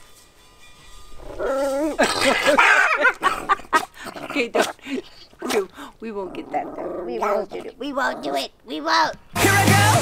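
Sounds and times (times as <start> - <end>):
small dog whining: 1.3 - 2.3.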